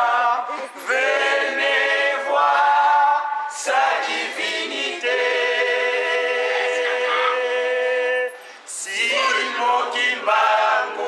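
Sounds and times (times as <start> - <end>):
a cappella group singing: 0.0 - 11.0.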